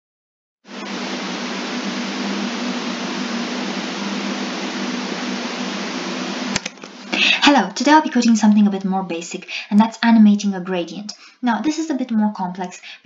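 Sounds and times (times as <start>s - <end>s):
low hum: 0.7s - 9.7s
loud static hiss: 0.7s - 13.0s.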